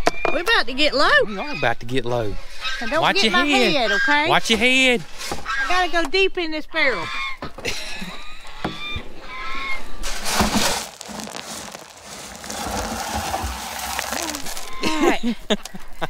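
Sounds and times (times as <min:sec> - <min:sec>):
grain feed rustling and rattling: 0:09.6 - 0:15.6
scoop scraping in plastic barrel: 0:09.9 - 0:15.2.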